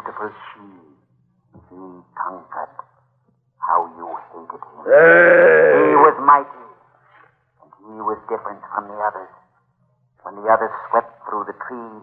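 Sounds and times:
man's voice on old recording: 0.0 - 1.0, 1.6 - 2.9, 3.6 - 6.8, 7.6 - 9.4, 10.2 - 12.0.

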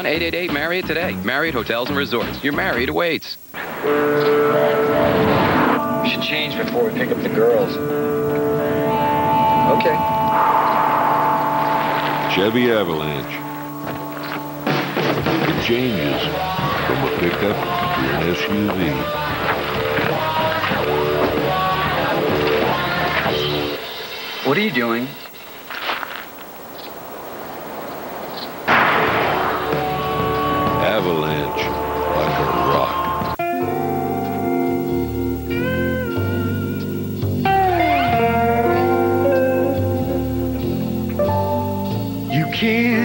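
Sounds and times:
soft ambient hiss: 0.0 - 43.0
held music chords: 3.8 - 23.8, 28.7 - 43.0
loud whoosh burst: 8.5 - 13.8, 27.2 - 30.0.

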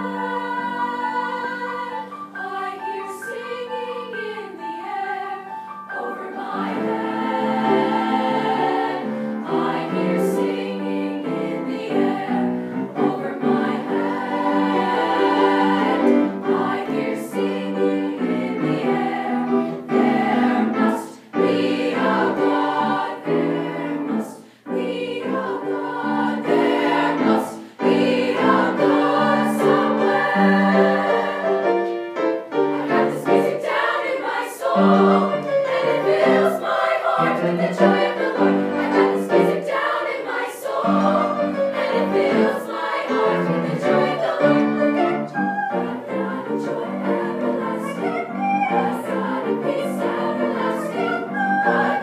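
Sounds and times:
girls' choir singing chords: 0.0 - 52.0
piano accompaniment: 0.0 - 52.0
singers breathing: 24.4 - 24.8, 27.6 - 27.8.

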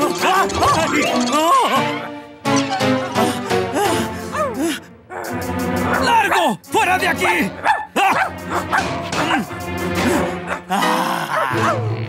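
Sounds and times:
background music: 0.0 - 12.0
puppet dog barking and yipping: 5.2 - 9.5, 11.3 - 11.9.

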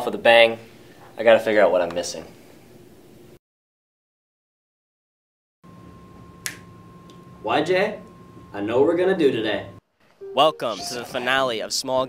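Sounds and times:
room hum with high tone: 0.0 - 3.4, 5.7 - 11.7
finger snap: 6.4 - 7.2.

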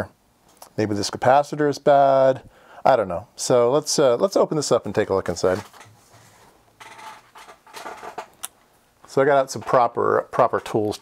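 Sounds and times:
faint scratchy rustling: 4.9 - 8.2
light scrapes: 5.4 - 8.0.

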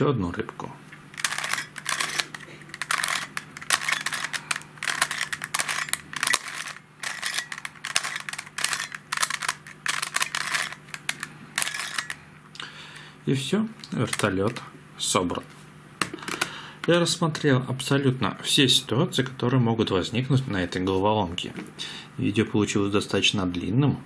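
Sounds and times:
plastic puzzle pieces clicking: 1.2 - 12.2, 13.8 - 14.6.

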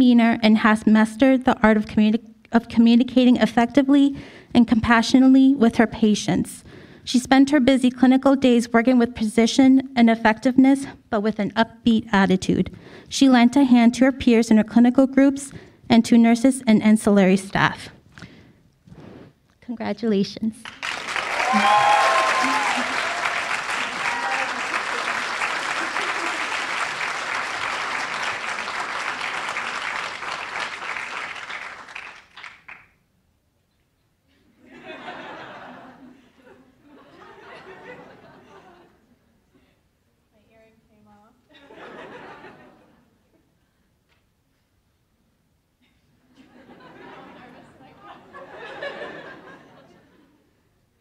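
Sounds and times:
audience applauding: 20.6 - 32.9
voices cheering: 21.0 - 30.5.

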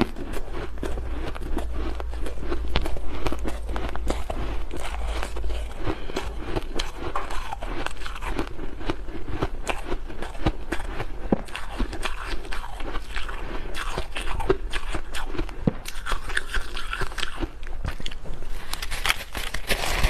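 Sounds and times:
biting and crunching ice: 0.0 - 20.0.

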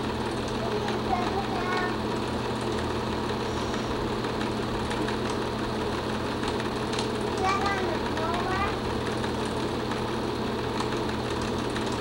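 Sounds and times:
film projector whirring and clattering: 0.0 - 12.0.

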